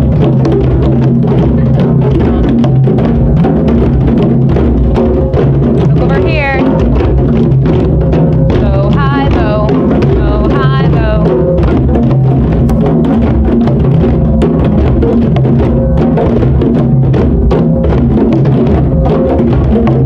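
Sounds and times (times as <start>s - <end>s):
children playing djembes: 0.0s - 20.0s.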